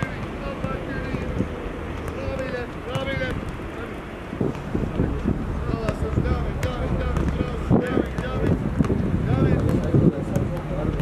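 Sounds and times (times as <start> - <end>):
ball being kicked: 0.0 - 1.4, 2.0 - 3.6, 5.8 - 11.0
wind noise on microphone: 3.1 - 11.0.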